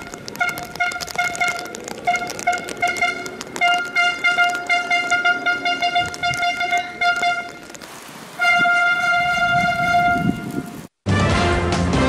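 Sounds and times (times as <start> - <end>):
vehicle horn long blast: 0.4 - 7.6, 8.4 - 10.8.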